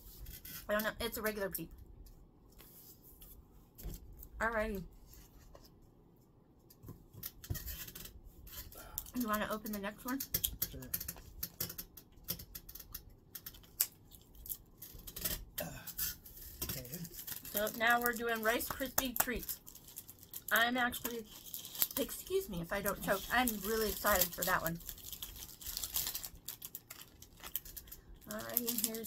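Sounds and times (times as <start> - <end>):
plastic bottles crinkling: 16.4 - 29.0.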